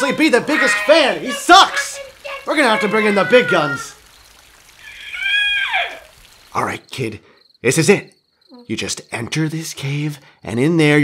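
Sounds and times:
hiss of falling rain: 0.0s - 7.2s.

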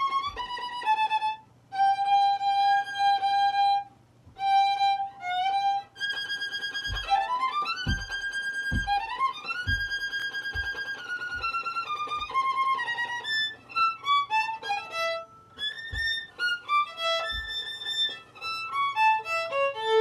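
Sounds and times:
solo violin fast passage: 0.0s - 20.0s.

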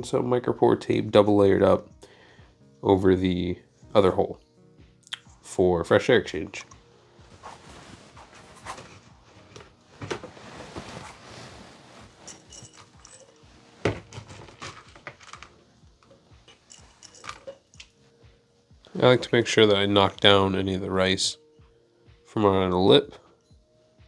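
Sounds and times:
rice grains rustling and scraping: 7.2s - 9.4s, 10.3s - 13.8s.

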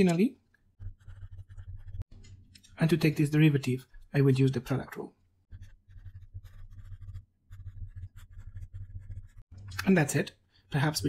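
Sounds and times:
marker pen scratching on paper: 0.7s - 2.1s, 5.5s - 9.5s.

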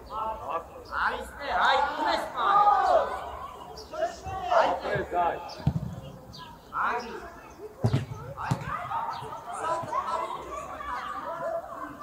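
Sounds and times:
players shouting: 1.1s - 5.6s, 7.9s - 12.0s
football kick thuds: 5.6s - 6.0s.

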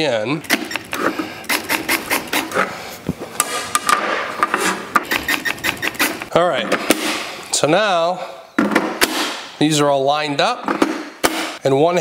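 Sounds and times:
tools clicking and knocking: 0.4s - 2.7s, 3.4s - 7.0s.

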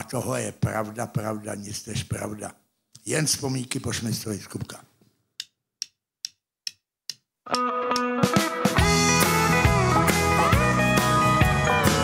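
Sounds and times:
drumsticks clicking count-in: 5.4s - 8.5s
country band playing: 7.5s - 12.0s
guitar notes: 7.5s - 12.0s.

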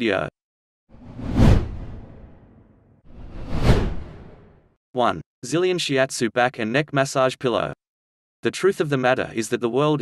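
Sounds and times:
whoosh sound effects: 1.0s - 4.6s.

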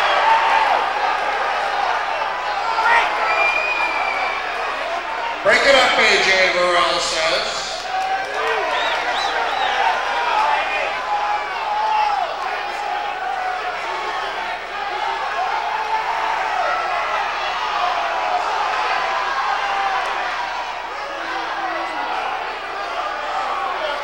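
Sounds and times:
crowd shouting and yelling: 0.0s - 24.0s.

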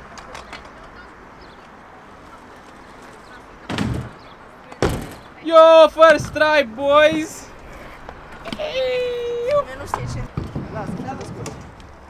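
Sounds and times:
scooter clacking on concrete: 0.0s - 1.6s, 8.1s - 12.0s
voices: 0.0s - 12.0s
person shouting: 8.4s - 9.7s.

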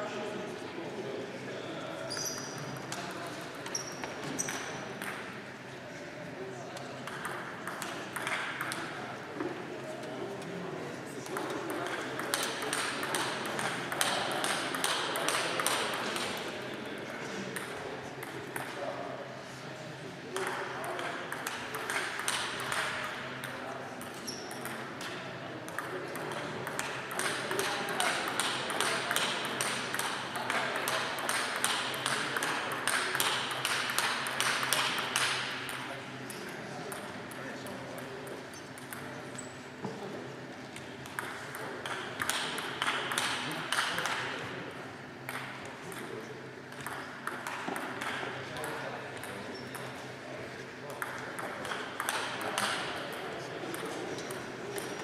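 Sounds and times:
table tennis ball clicking: 7.0s - 9.0s, 11.3s - 16.4s, 20.4s - 37.4s, 41.0s - 44.2s, 46.7s - 49.9s, 51.0s - 53.0s.

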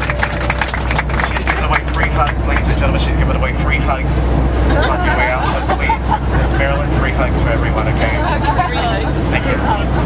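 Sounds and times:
airliner cabin drone: 0.0s - 10.0s
people talking at once: 4.7s - 10.0s.

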